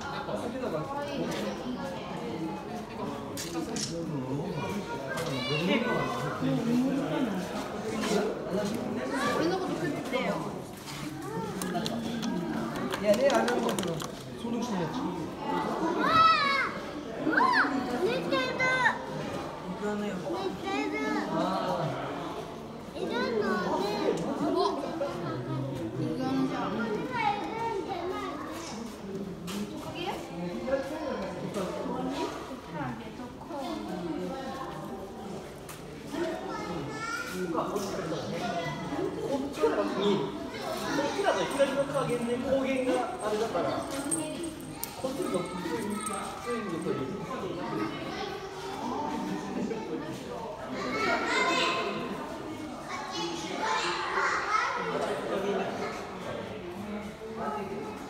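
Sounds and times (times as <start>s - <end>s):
children talking and calling out: 0.0s - 12.9s, 14.7s - 58.0s.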